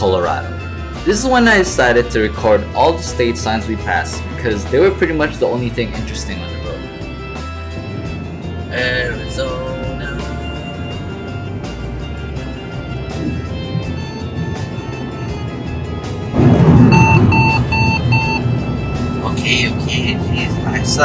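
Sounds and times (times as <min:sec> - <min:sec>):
background music: 0:00.0 - 0:21.0
in-car road noise: 0:06.8 - 0:21.0
dashboard chime beeping: 0:16.8 - 0:18.9.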